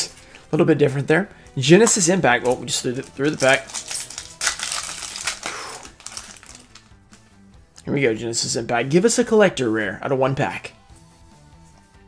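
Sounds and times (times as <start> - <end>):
foil wrapper crinkling and tearing: 2.4 - 6.9.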